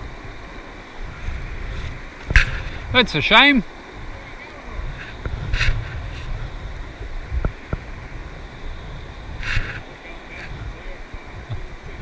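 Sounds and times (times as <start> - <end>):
flowing river water: 0.0 - 12.0
wind rumbling on microphone: 0.0 - 12.0.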